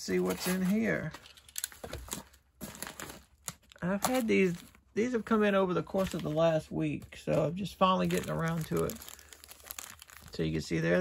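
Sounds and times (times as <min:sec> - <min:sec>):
plastic packaging crinkling: 0:00.1 - 0:10.7.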